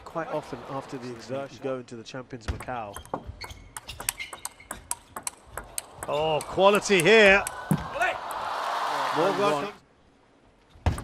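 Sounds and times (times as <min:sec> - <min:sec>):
ping pong ball clicks: 0:03.0 - 0:07.6.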